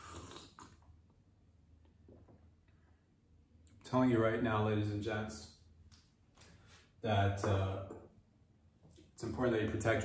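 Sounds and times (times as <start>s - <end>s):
noisy sip from a mug: 0.0s - 0.9s
man speaking: 7.0s - 8.0s, 9.2s - 10.0s.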